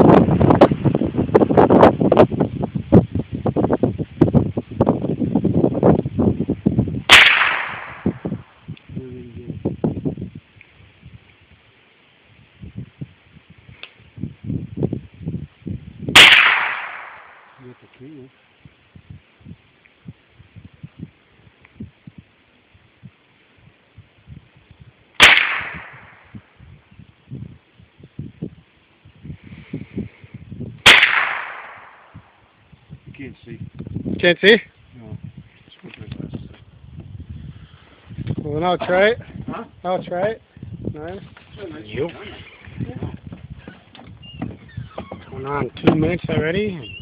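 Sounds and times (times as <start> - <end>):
rifle shots: 7.1 - 8.4, 16.1 - 17.6, 25.2 - 26.2, 30.8 - 32.2.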